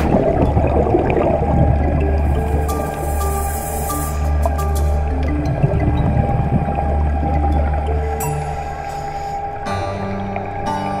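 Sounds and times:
underwater bubbling: 0.0s - 11.0s.

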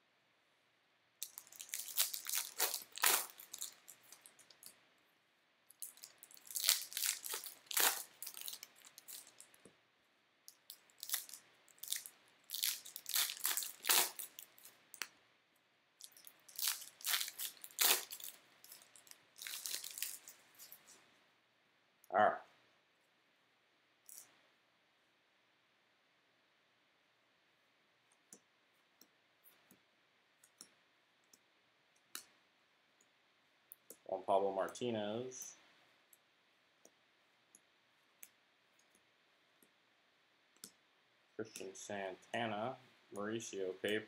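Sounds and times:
card pack wrappers crinkling: 1.2s - 4.7s, 5.7s - 9.6s, 10.6s - 14.8s, 16.0s - 21.0s.

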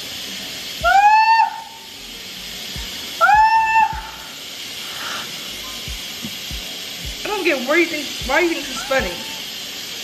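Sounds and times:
sink sprayer water spraying: 0.0s - 10.0s.

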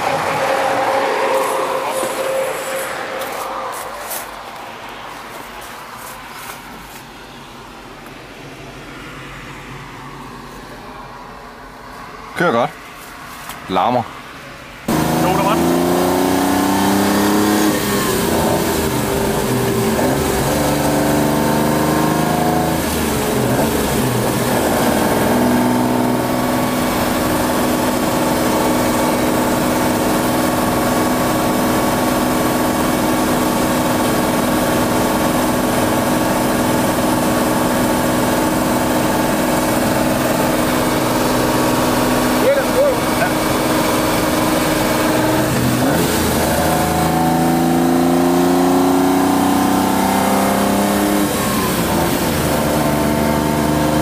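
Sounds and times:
car engine revving in cabin: 14.9s - 54.0s.

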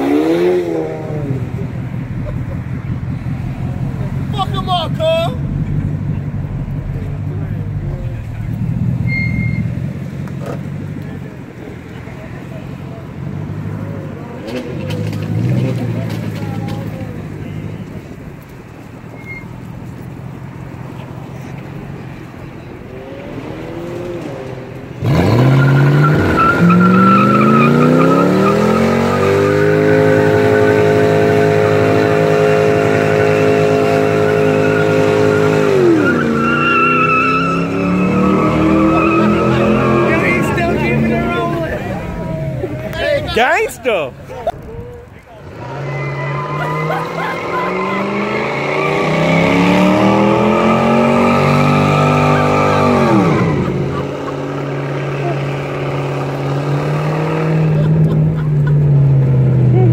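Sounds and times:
car engine revving: 0.0s - 19.0s, 19.7s - 59.9s
tyres squealing: 7.9s - 10.7s, 19.1s - 20.0s, 25.0s - 56.2s.

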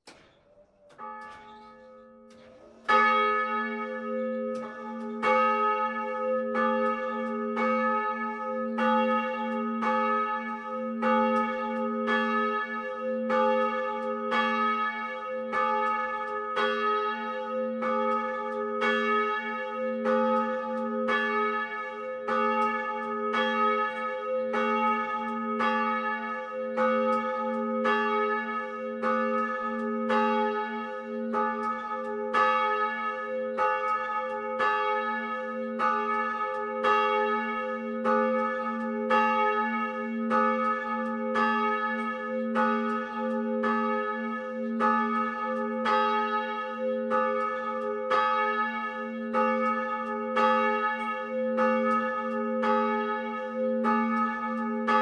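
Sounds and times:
church bell ringing: 0.9s - 55.0s.

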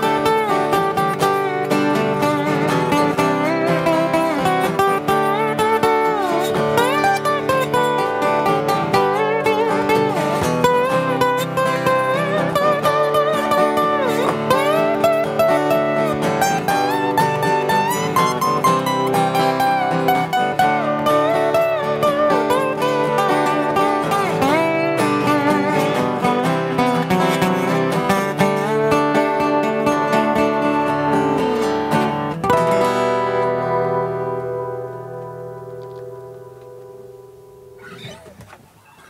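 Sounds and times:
acoustic guitar lead lines: 0.0s - 39.0s
acoustic guitar strumming chords: 0.0s - 39.0s.

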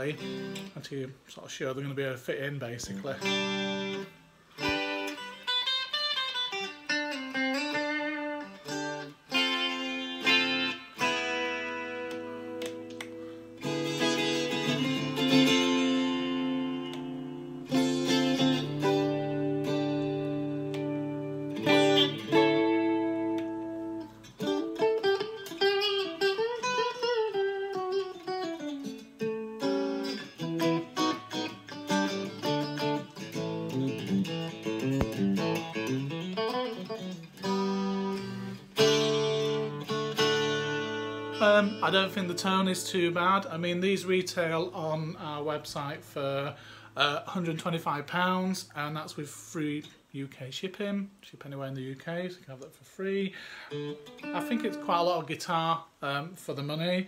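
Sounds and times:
electric guitar playing: 0.0s - 0.8s, 2.8s - 48.9s, 53.3s - 56.1s.

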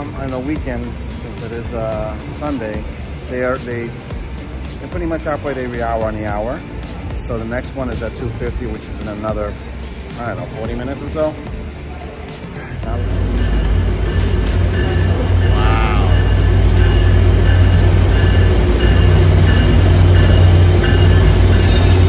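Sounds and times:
diesel train low rumble: 0.0s - 22.0s.

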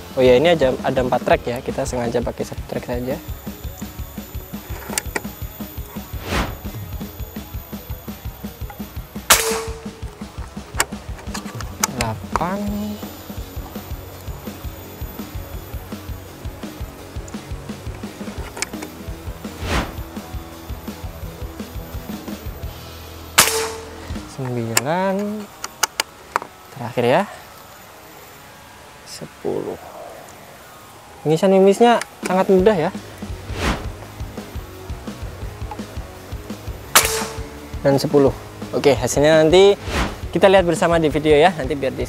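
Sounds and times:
background music with steady beat: 0.0s - 29.2s, 29.8s - 42.0s
air rifle shots: 9.2s - 11.4s, 23.4s - 24.4s, 36.9s - 37.8s.

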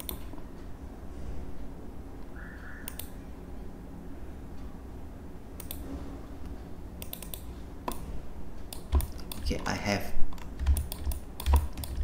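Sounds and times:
computer mouse clicking: 0.0s - 0.4s, 2.8s - 3.2s, 5.6s - 5.8s, 6.4s - 12.0s.

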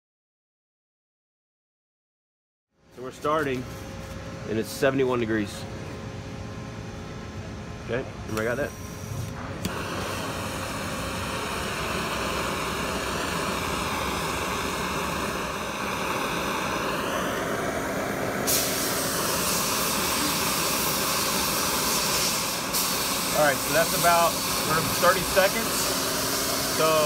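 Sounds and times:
blowtorch flame hissing: 8.3s - 27.0s.

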